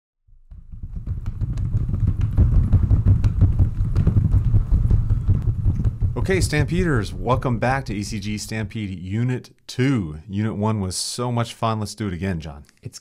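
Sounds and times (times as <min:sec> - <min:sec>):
hooves galloping: 0:00.5 - 0:08.7.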